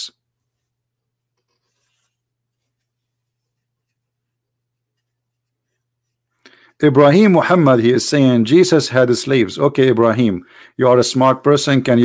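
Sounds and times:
faint scratching rustle: 1.4 - 6.3.

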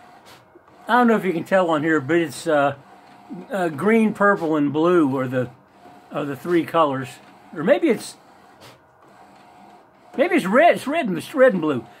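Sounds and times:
printer mechanical whir: 0.0 - 12.0.

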